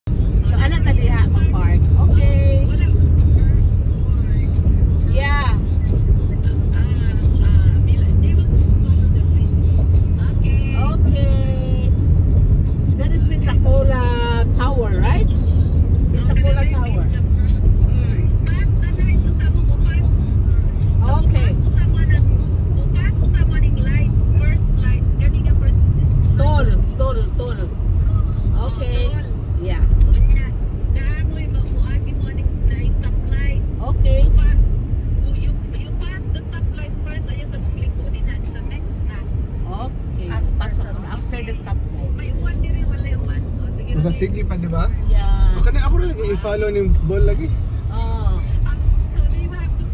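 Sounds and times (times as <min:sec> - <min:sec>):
car road and engine rumble: 0:00.0 - 0:49.9
voices: 0:00.2 - 0:49.9.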